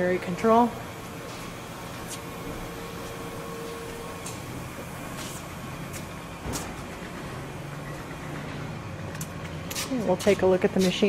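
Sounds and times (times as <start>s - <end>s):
machinery hum: 0.0s - 11.0s.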